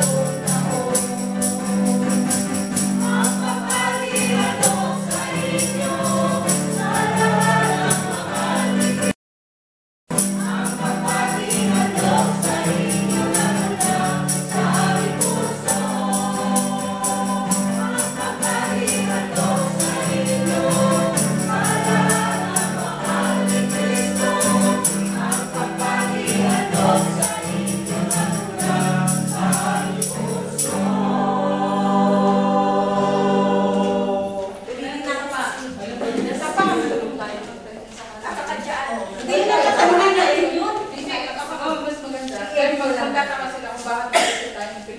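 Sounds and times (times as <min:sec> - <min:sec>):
choir singing gospel song: 0:00.0 - 0:09.2, 0:10.1 - 0:37.7, 0:39.2 - 0:41.0
tambourine beat: 0:00.0 - 0:09.2, 0:10.1 - 0:31.9.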